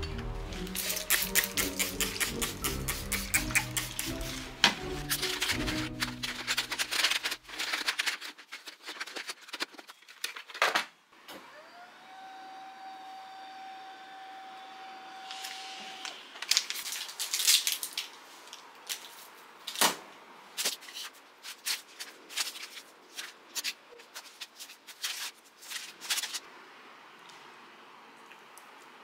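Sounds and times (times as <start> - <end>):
plastic bag and paper crinkling: 4.1 - 10.8, 16.4 - 19.8, 20.6 - 26.4
whirring hum rising in pitch: 11.5 - 16.4.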